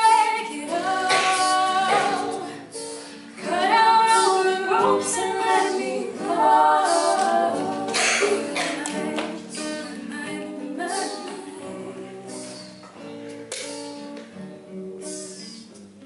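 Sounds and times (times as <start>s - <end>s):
woman singing lead: 0.0s - 12.9s
group vocal harmonies: 0.0s - 14.2s
acoustic guitar: 0.0s - 16.0s.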